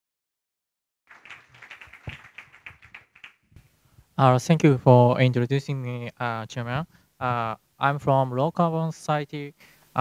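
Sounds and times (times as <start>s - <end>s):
audience clapping: 1.1s - 3.7s.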